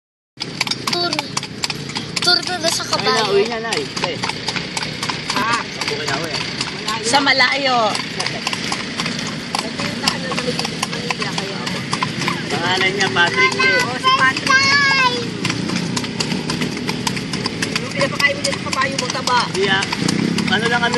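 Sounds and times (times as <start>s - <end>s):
carriage wheels rumbling: 0.4s - 20.9s
hooves clip-clopping on pavement: 0.4s - 20.9s.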